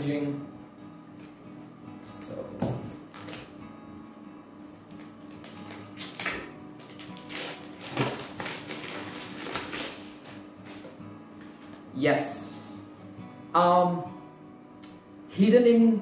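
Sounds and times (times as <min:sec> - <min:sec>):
background music: 0:00.0 - 0:16.0
plastic wrapping crinkling: 0:03.1 - 0:03.5, 0:04.9 - 0:11.8.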